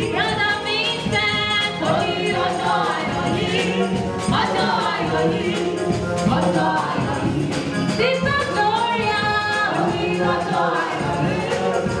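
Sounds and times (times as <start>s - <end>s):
choir singing gospel: 0.0s - 12.0s.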